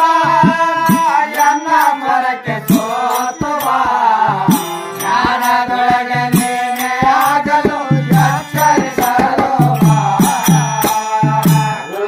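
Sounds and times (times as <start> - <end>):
harmonium: 0.0 - 12.0
tabla strokes: 0.0 - 12.0.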